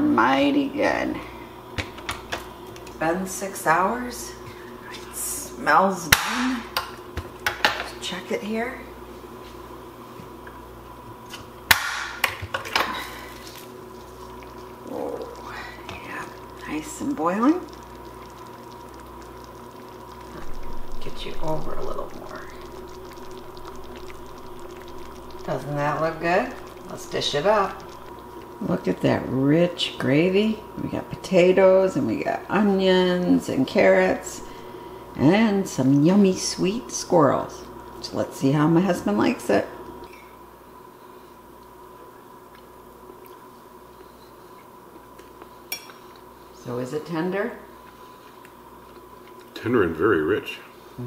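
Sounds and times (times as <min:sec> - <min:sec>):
faint steady hum: 0:00.0 - 0:51.0
stew bubbles popping: 0:11.7 - 0:29.8.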